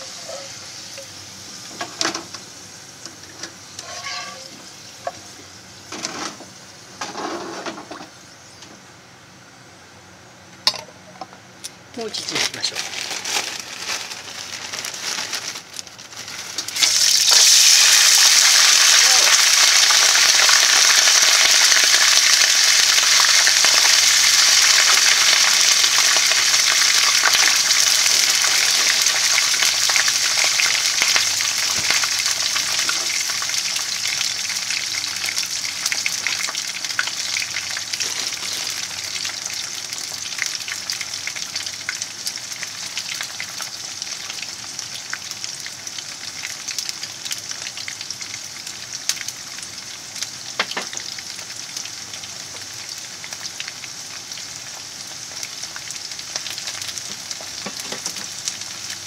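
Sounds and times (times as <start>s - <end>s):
potatoes frying in oil: 0.0s - 8.6s, 11.9s - 59.0s.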